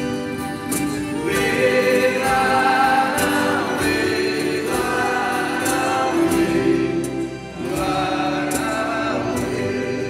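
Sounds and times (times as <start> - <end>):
instrumental accompaniment: 0.0 - 10.0
voices singing long notes: 1.0 - 10.0.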